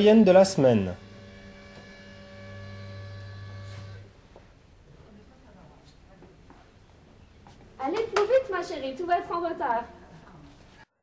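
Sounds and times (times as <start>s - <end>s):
electrical hum: 0.0s - 9.0s.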